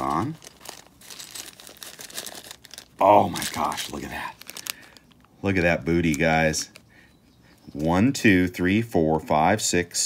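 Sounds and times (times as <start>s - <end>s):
paper packing shred rustling: 0.0s - 5.2s
plastic bag crinkling: 0.0s - 6.9s.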